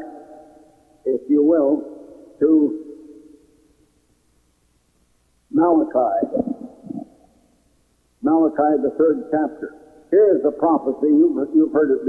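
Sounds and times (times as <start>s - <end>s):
faint recording hiss: 0.0s - 12.0s
man speaking: 1.1s - 2.9s, 5.5s - 7.2s, 8.2s - 12.0s.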